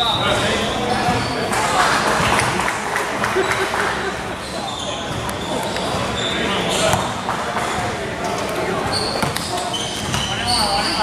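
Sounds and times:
basketball bouncing on gym floor: 0:06.8 - 0:07.9, 0:08.9 - 0:10.6.

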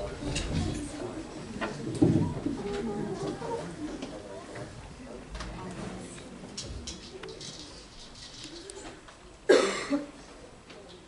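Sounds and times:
loud cough: 0:09.5 - 0:10.1.

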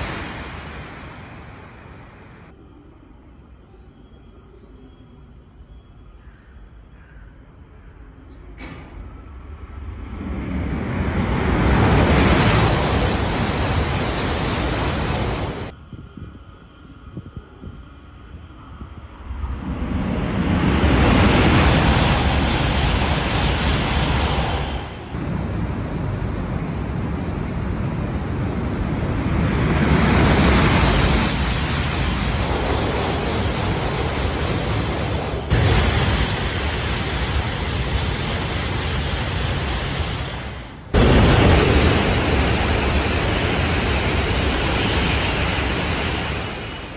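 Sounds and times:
high-speed trains roaring past: 0:00.0 - 0:46.9.

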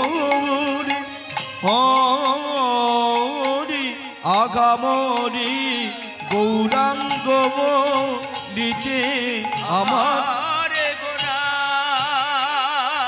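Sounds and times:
hand drums: 0:00.0 - 0:13.0
harmonium: 0:00.0 - 0:13.0
man singing devotional chant: 0:00.0 - 0:13.0
small hand cymbals: 0:00.0 - 0:13.0.

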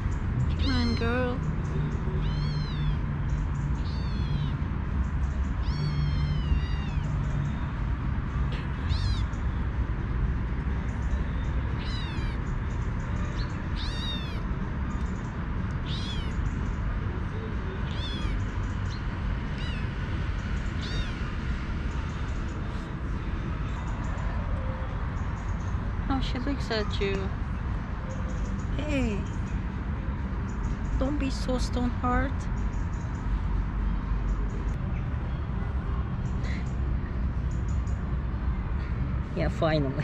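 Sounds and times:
kitten mewing: 0:02.2 - 0:03.0, 0:03.8 - 0:04.6, 0:05.6 - 0:07.1, 0:08.6 - 0:09.3, 0:11.8 - 0:12.4, 0:13.8 - 0:14.4, 0:15.8 - 0:16.4, 0:17.8 - 0:18.4, 0:19.5 - 0:19.9, 0:20.8 - 0:21.2.

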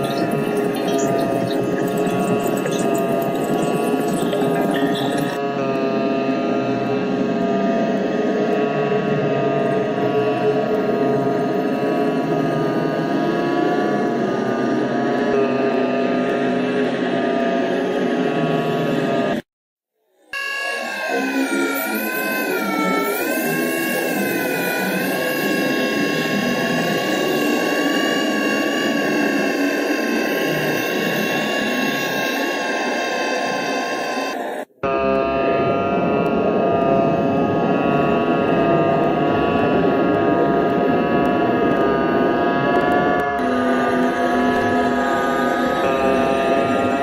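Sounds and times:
sustained drone: 0:00.0 - 0:19.4, 0:20.3 - 0:47.0.

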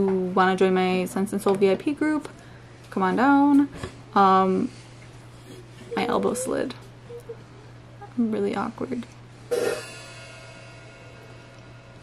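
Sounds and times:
cymbal struck and ringing: 0:09.5 - 0:12.0.

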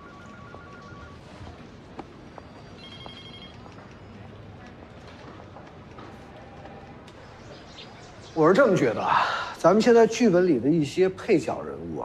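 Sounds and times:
electronic telephone trilling: 0:00.0 - 0:01.3, 0:02.8 - 0:03.6.

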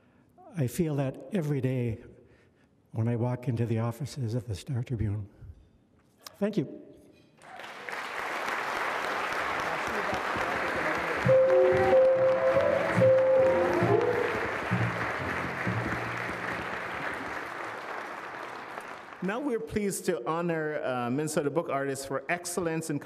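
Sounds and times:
audience applauding: 0:07.4 - 0:19.5
small live band playing: 0:11.2 - 0:17.2.

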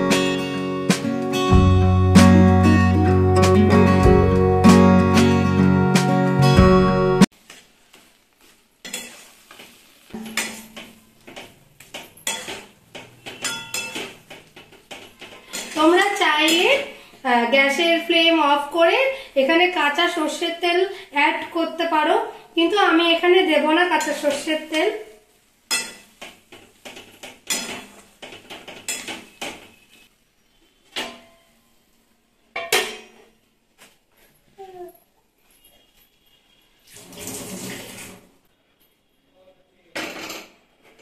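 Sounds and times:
metal spatula scraping pan: 0:08.8 - 0:11.4, 0:12.1 - 0:16.9.

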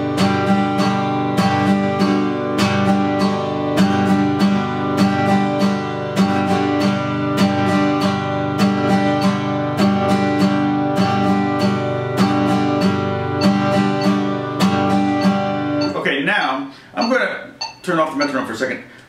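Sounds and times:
acoustic guitar strumming: 0:00.0 - 0:18.6.

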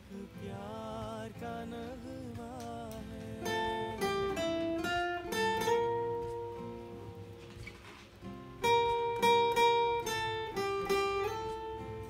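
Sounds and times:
acoustic guitar plucked melody: 0:00.0 - 0:12.0.

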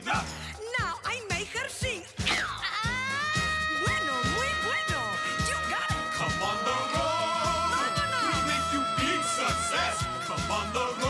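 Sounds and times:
band accompaniment: 0:02.2 - 0:11.0
yelping vocal cries: 0:02.4 - 0:11.0.

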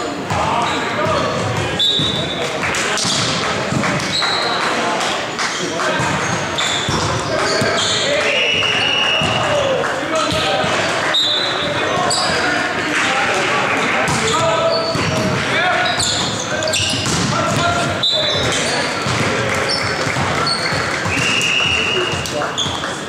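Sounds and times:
players shouting in echoing hall: 0:00.0 - 0:23.0
sneakers squeaking on court: 0:00.3 - 0:02.4, 0:05.5 - 0:08.2, 0:10.2 - 0:12.6, 0:14.1 - 0:23.0
volleyball hits: 0:00.3 - 0:23.0.

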